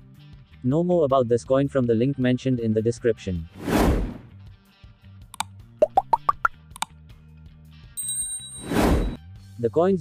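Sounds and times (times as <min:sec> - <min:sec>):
soft background music: 0:00.0 - 0:08.6, 0:09.2 - 0:10.0
plops rising in pitch: 0:05.8 - 0:06.6.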